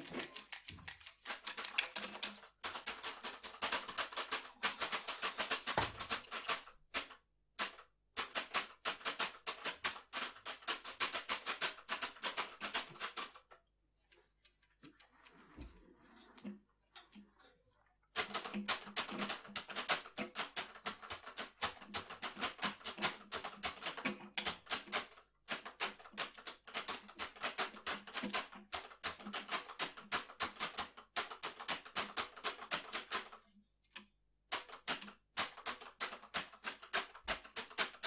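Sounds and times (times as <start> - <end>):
rapid irregular clicking: 0.0 - 13.6, 18.1 - 38.0.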